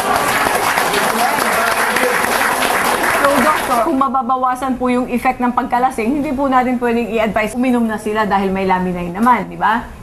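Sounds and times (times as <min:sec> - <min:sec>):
studio audience applauding: 0:00.0 - 0:04.0.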